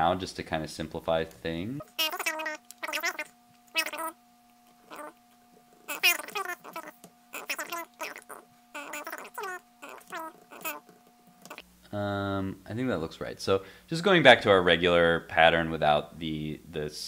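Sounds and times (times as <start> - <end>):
sped-up chirping voice: 1.9 - 4.2, 4.9 - 5.2, 5.9 - 10.8.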